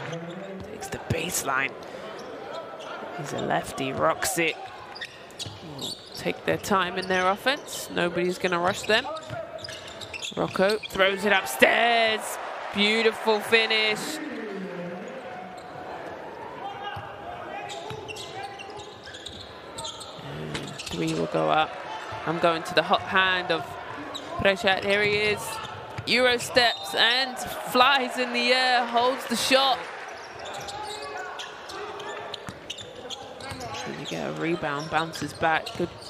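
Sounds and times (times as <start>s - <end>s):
crowd murmur: 12.2s - 17.3s
ball bouncing on court: 24.4s - 26.2s, 32.3s - 36.0s.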